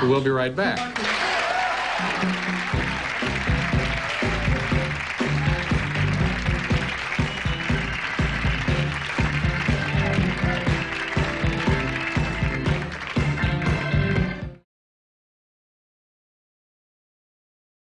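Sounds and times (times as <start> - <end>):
upbeat band music: 1.8 - 14.6.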